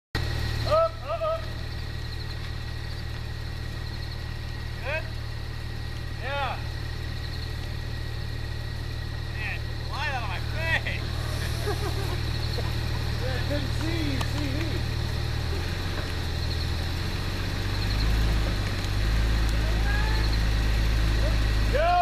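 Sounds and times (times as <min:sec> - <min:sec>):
distant voices calling out: 0:00.2 - 0:22.0
vehicle engine idling: 0:00.2 - 0:22.0.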